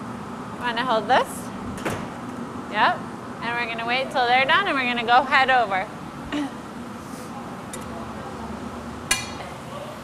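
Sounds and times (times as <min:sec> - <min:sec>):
gas furnace roaring: 0:00.0 - 0:10.0.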